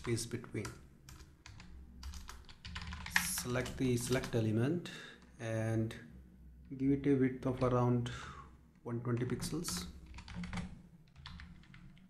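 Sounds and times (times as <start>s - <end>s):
keyboard typing: 0.0s - 4.4s, 9.2s - 12.0s.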